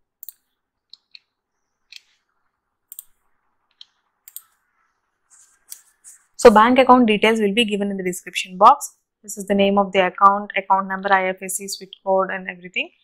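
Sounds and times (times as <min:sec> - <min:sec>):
computer mouse clicks: 0:00.2 - 0:02.3, 0:02.9 - 0:04.7, 0:05.6 - 0:06.2.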